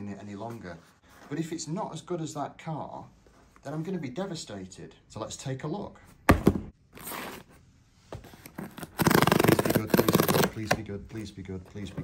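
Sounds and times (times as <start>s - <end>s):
knocks on cardboard box: 6.3s - 6.7s
cardboard tear strip ripping: 8.6s - 10.6s.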